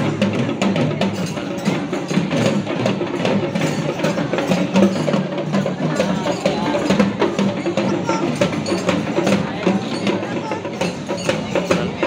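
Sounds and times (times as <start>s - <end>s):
marching drums: 0.0s - 12.0s
music: 0.0s - 12.0s.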